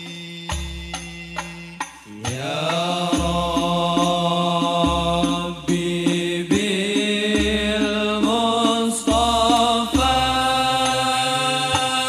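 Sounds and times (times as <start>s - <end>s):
men chanting devotional song: 0.0s - 12.0s.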